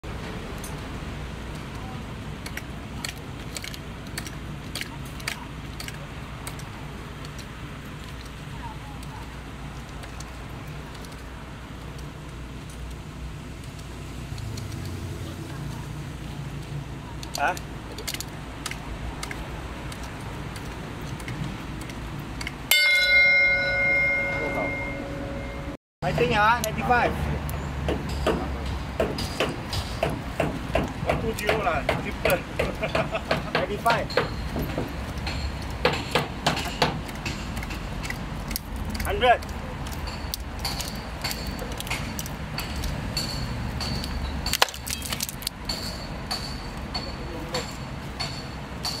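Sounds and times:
concrete cracking: 0:01.5 - 0:13.0, 0:13.6 - 0:22.7, 0:30.0 - 0:47.0
steel clang ringing: 0:22.7 - 0:25.8.

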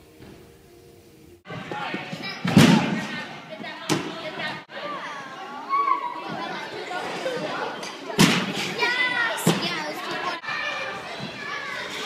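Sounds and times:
girls chattering: 0:01.5 - 0:12.0.

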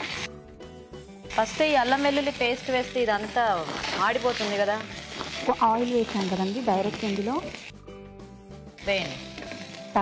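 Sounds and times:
paste sizzling in hot oil: 0:00.0 - 0:10.0
spatula stirring in a pan: 0:01.6 - 0:07.8, 0:08.8 - 0:10.0.

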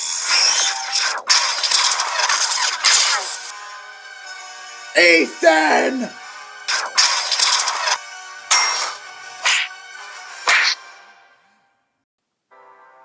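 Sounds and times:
background music: 0:02.6 - 0:13.0.

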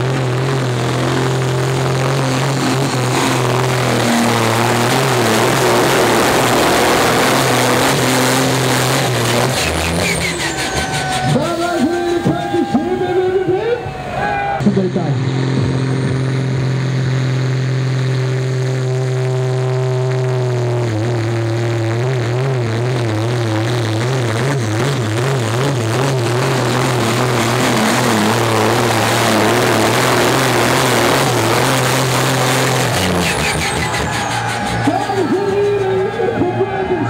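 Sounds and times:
tractor engine at high revs: 0:00.0 - 0:14.0, 0:14.6 - 0:37.0.

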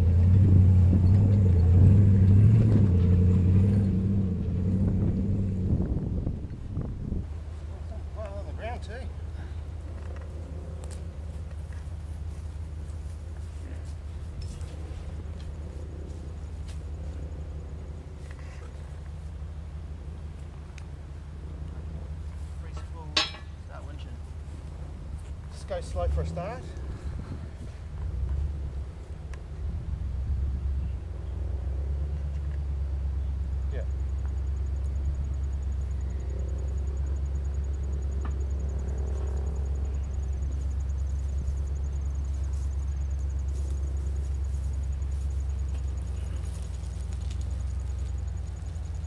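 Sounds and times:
car engine idling: 0:00.0 - 0:49.0
steady low hum: 0:00.0 - 0:49.0
metal hook clinking: 0:23.1 - 0:23.6.

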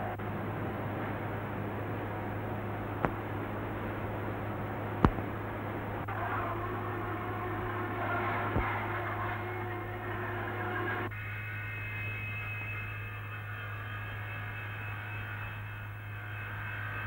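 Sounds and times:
low mains hum: 0:00.0 - 0:17.0
noisy background: 0:00.0 - 0:17.0.

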